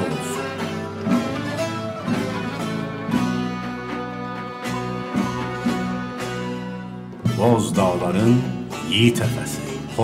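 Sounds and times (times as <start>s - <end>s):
plucked string instrument melody: 0.0s - 10.0s.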